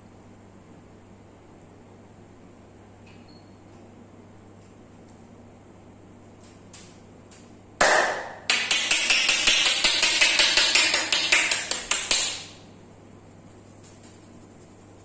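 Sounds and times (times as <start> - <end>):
palms tapping on scalp: 7.8 - 12.5.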